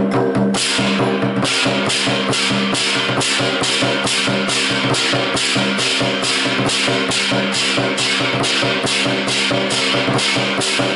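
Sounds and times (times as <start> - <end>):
large drum beaten with sticks: 0.0 - 10.9
hand cymbals crashing: 0.1 - 10.9.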